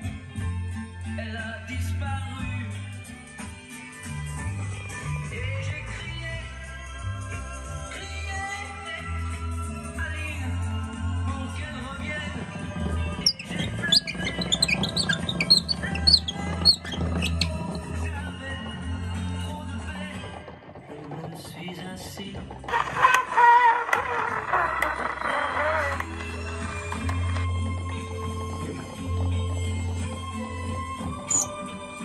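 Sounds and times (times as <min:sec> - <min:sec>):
guitar: 0:00.0 - 0:32.0
pop song on gramophone record: 0:00.0 - 0:32.0.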